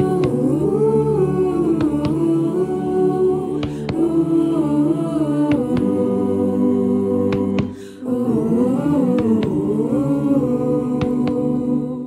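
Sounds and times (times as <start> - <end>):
choir humming wordlessly: 0.0 - 12.0.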